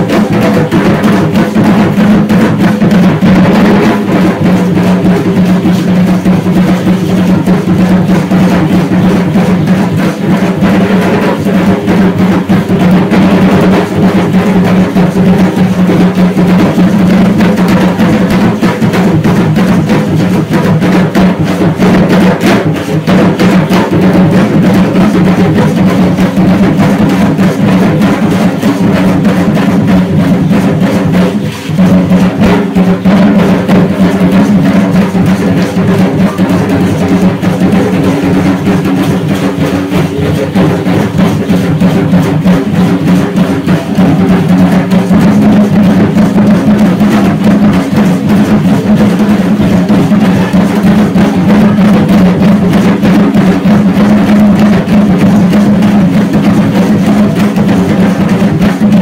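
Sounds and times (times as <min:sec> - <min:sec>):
rapid drum percussion music: 0:00.0 - 0:59.0.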